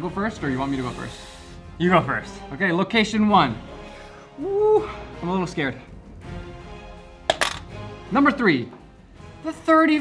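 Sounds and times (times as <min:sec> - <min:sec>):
background music: 0:00.0 - 0:10.0
dice popper pop and rattle: 0:07.3 - 0:07.7.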